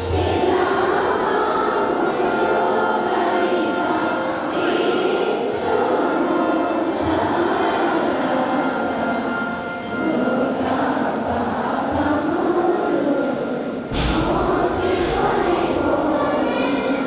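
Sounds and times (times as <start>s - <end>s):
congregation praying aloud: 0.0s - 17.0s.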